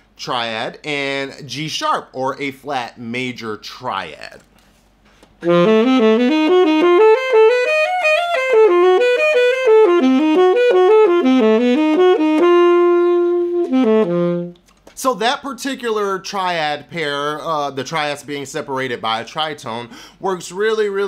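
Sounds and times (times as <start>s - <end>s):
alto saxophone playing: 5.4s - 14.6s.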